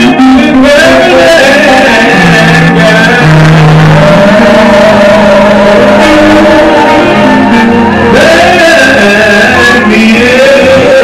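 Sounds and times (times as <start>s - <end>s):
live gospel music: 0.0s - 11.0s.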